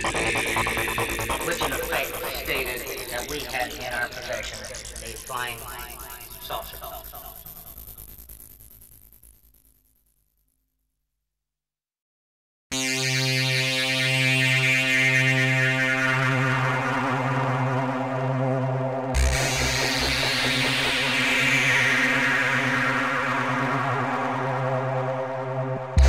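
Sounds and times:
bright synth wash: 0:00.0 - 0:07.8
low bass pulses: 0:00.0 - 0:08.2
synthesizer drone with sweeping filter: 0:00.0 - 0:09.0, 0:12.8 - 0:26.0.

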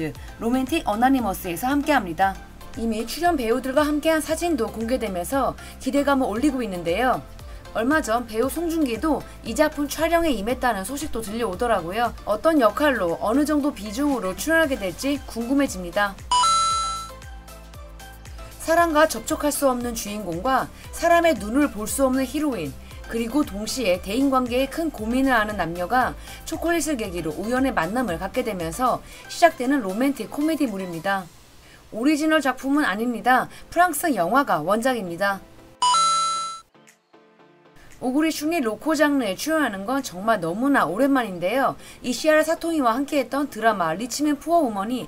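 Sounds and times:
background music with steady beat: 0:00.0 - 0:45.0
two-note chime: 0:16.3 - 0:17.2, 0:35.8 - 0:36.6.

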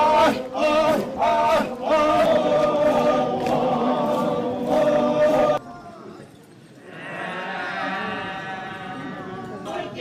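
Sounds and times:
men chanting in unison: 0:00.0 - 0:05.6.

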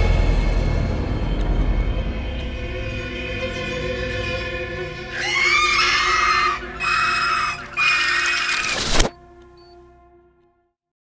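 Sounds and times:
sharp hit: 0:00.0 - 0:07.8
low sustained drone: 0:00.0 - 0:10.3
high wavering shrieks: 0:01.2 - 0:09.1.

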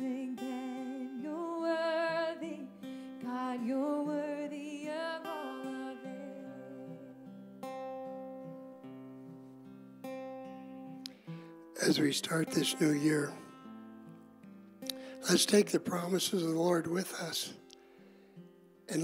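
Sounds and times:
woman singing with vibrato: 0:00.0 - 0:07.3
strummed acoustic guitar: 0:00.0 - 0:19.0.

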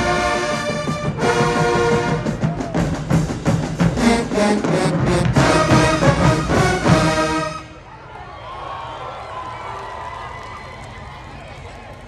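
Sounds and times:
stadium crowd voices: 0:00.0 - 0:12.0.

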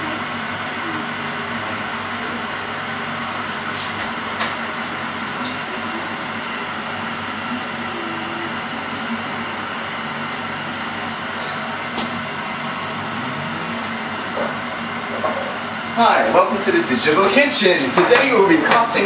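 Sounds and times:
kitchen appliance running: 0:00.0 - 0:19.0.

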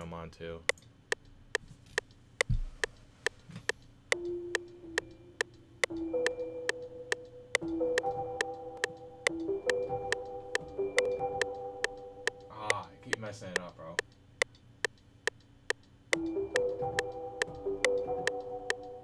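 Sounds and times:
metronome clicking: 0:00.7 - 0:01.4, 0:02.8 - 0:19.0
soft keys playing chords: 0:04.1 - 0:13.9, 0:16.1 - 0:19.0.

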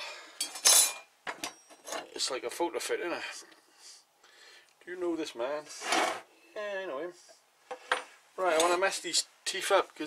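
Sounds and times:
metal clattering scrape: 0:05.7 - 0:06.3.

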